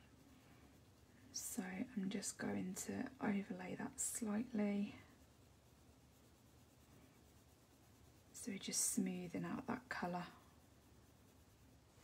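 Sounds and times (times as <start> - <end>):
coloured pencil scratching on paper: 0.0 - 12.0.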